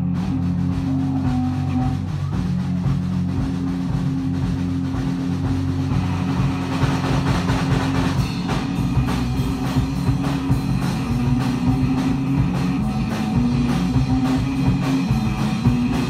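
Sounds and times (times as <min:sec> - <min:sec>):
long held low note: 0:00.0 - 0:06.8
rock band playing: 0:00.0 - 0:16.0.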